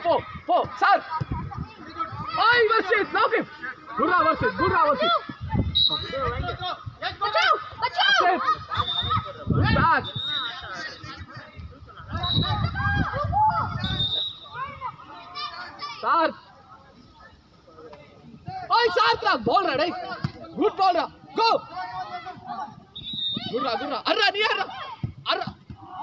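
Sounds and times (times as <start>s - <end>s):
voices calling and shouting: 0.0s - 26.0s.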